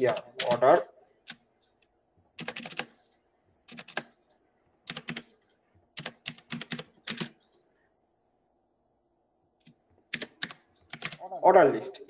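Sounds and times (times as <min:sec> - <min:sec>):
computer keyboard typing: 0:00.0 - 0:07.6, 0:09.6 - 0:11.3.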